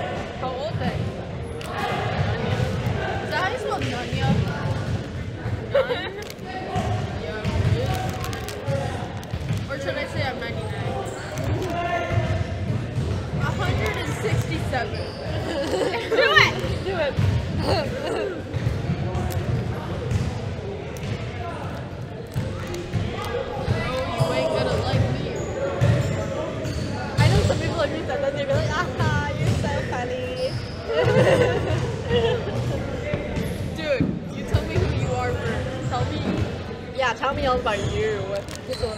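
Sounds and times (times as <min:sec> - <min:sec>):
basketballs bouncing on gym floor: 0:01.8 - 0:21.2, 0:22.3 - 0:38.9.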